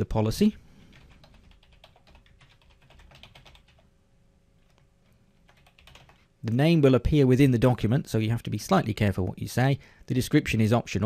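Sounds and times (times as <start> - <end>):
faint keyboard typing: 0.8 - 3.9, 4.6 - 6.3.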